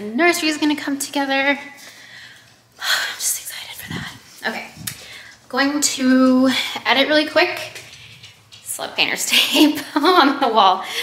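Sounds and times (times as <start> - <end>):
woman whispering: 2.8 - 4.8.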